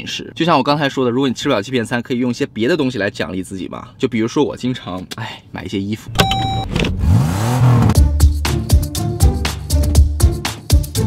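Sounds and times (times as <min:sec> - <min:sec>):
short steady tone: 0:06.2 - 0:06.8
engine revving: 0:06.4 - 0:08.1.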